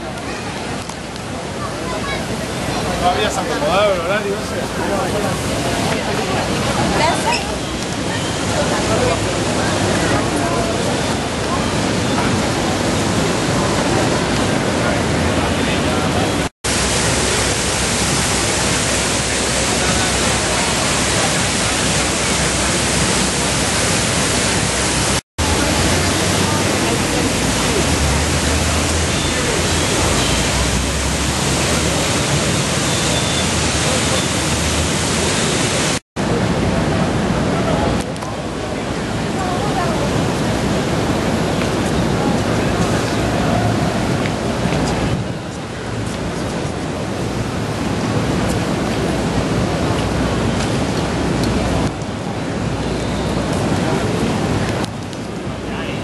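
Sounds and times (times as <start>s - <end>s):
people's voices: 0.0s - 24.7s, 25.4s - 56.0s
fountain water rushing: 0.0s - 56.0s.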